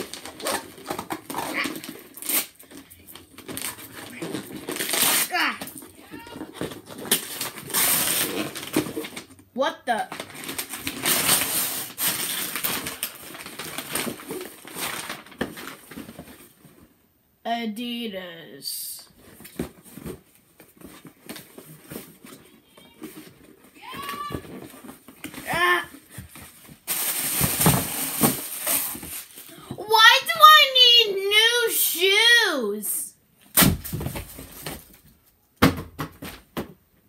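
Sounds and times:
wrapping paper ripping and crumpling: 0:00.0 - 0:09.3, 0:10.1 - 0:16.2, 0:20.8 - 0:29.6.

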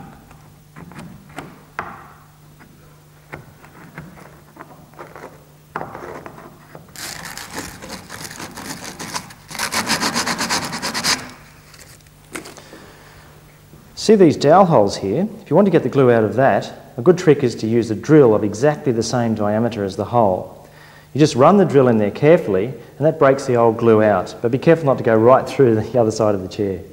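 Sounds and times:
fast scraping strokes: 0:06.0 - 0:12.0.

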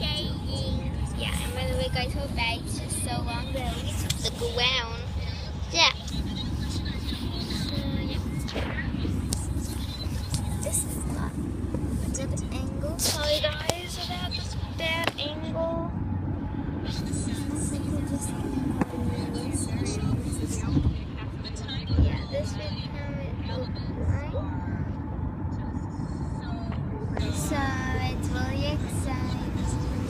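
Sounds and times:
car road and engine rumble: 0:00.0 - 0:30.0
indistinct voices talking: 0:00.0 - 0:30.0.

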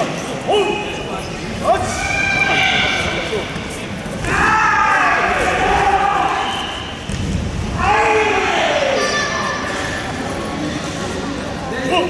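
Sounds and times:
people shouting: 0:01.6 - 0:03.4, 0:04.2 - 0:06.9, 0:07.7 - 0:09.7.

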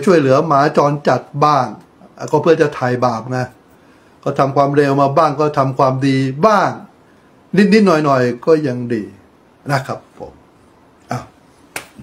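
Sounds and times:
man speaking: 0:00.0 - 0:03.6, 0:04.2 - 0:06.9, 0:07.5 - 0:10.4, 0:11.0 - 0:11.4
sharp click: 0:11.7 - 0:12.0.

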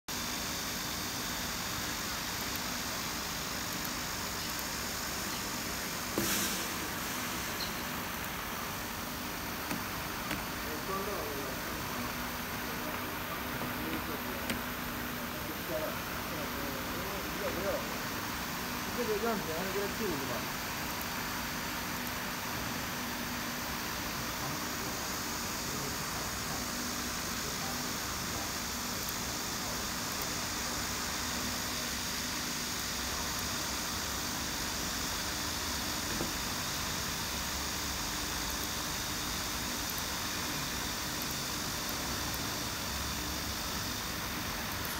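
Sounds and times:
machinery hiss: 0:00.5 - 0:44.9.

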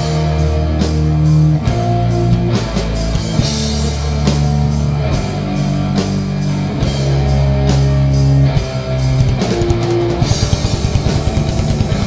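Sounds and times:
distorted electric guitars and bass: 0:00.0 - 0:12.0
drum and cymbal hits: 0:00.0 - 0:12.0.

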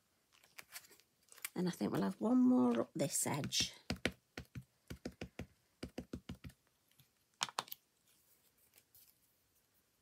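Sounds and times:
ink pad tapping on stamp: 0:03.4 - 0:06.6.

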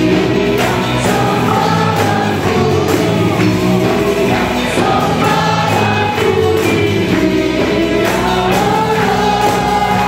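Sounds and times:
live band: 0:00.0 - 0:10.0
women singing: 0:00.0 - 0:10.0.

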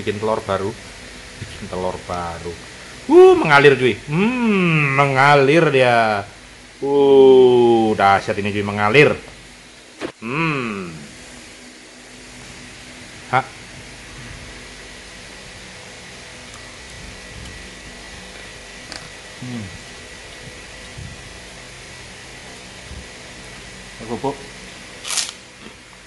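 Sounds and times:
fan hum: 0:00.0 - 0:26.0.

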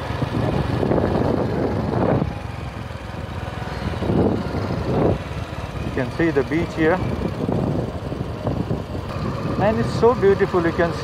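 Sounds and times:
wind rushing noise: 0:00.0 - 0:02.6, 0:03.6 - 0:06.1, 0:06.9 - 0:10.1
motorcycle engine running: 0:00.0 - 0:11.0.

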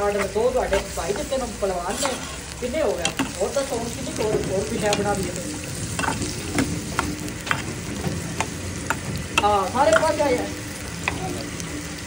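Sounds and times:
onions sizzling in a frying pan: 0:00.0 - 0:12.0.

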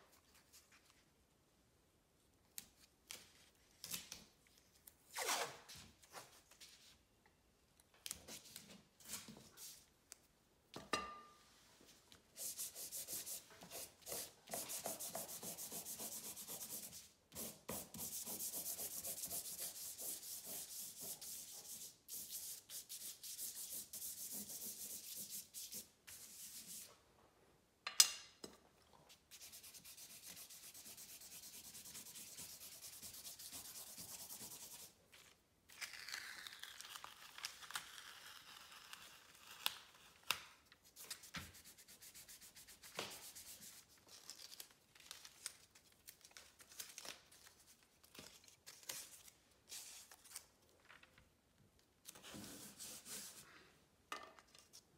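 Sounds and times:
charcoal scribbling on paper: 0:12.4 - 0:26.8, 0:29.3 - 0:34.9
masking tape peeled off paper: 0:29.4 - 0:50.5.

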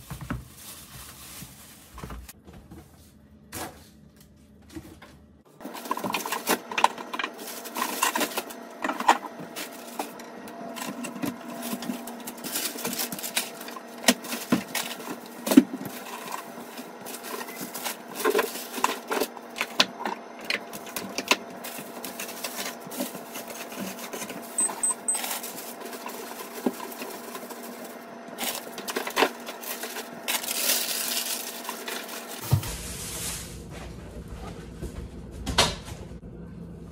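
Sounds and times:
packaging rustling: 0:00.0 - 0:02.4, 0:05.6 - 0:32.6
refrigerator hum: 0:00.0 - 0:36.9
packages knocking on fridge shelves: 0:10.8 - 0:27.8, 0:28.4 - 0:32.8.

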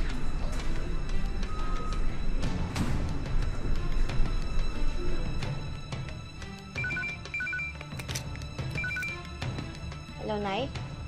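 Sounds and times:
soft background music: 0:00.0 - 0:11.0
phone ringtone beeps: 0:06.8 - 0:07.8, 0:08.8 - 0:09.3.

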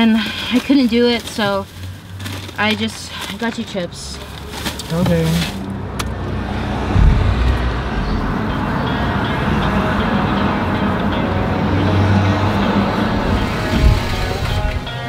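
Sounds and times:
car engine and road noise: 0:00.0 - 0:15.0
low thump: 0:06.5 - 0:08.8.

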